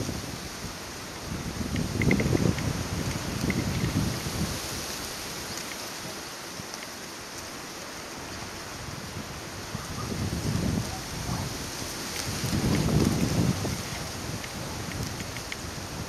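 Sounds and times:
wind buffeting microphone: 0.0 - 6.8, 8.1 - 16.0
steady hiss: 0.0 - 16.0.

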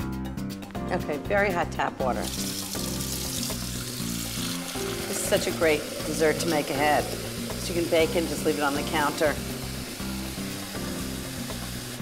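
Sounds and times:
background music: 0.0 - 12.0
tap water running into cup: 2.2 - 12.0.

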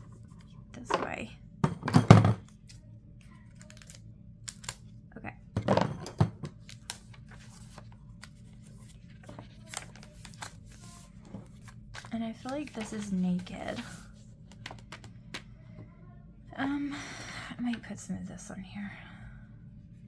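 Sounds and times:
paper rustling: 6.6 - 15.1.

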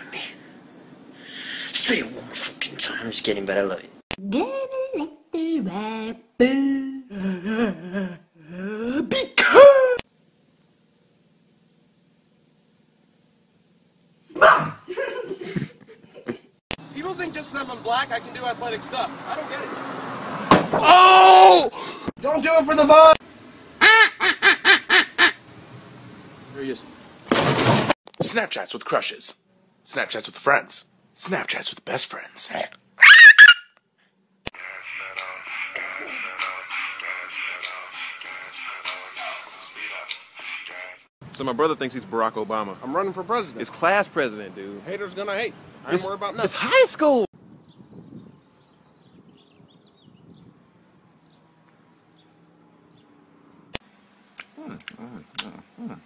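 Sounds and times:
woman moaning: 4.3 - 10.0, 54.6 - 56.0
man screaming: 20.8 - 21.8
music: 34.6 - 40.8.

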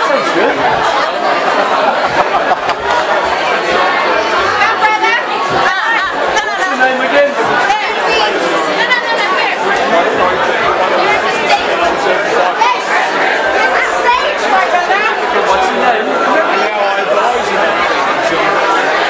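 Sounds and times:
crowd chatter: 0.0 - 19.0.

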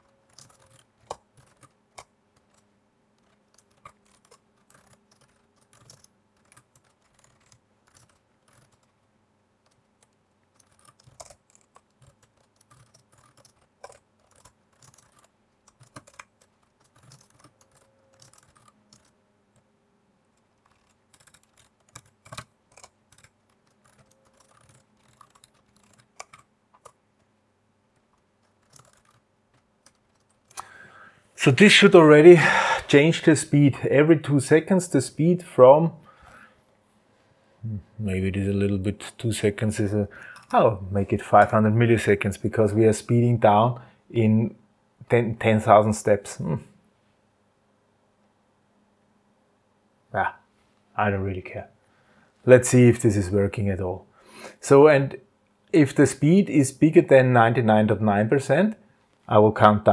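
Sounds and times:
faint computer keyboard typing: 0.0 - 19.7, 20.3 - 27.3, 27.9 - 30.8, 39.6 - 40.7.

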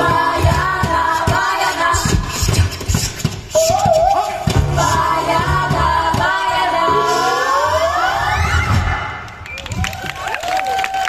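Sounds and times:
group singing a chord: 4.6 - 8.4
audience applause: 9.2 - 11.0.

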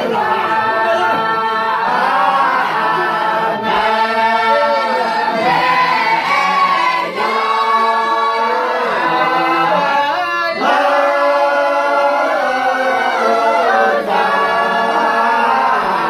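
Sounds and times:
men singing unaccompanied: 0.0 - 16.0.

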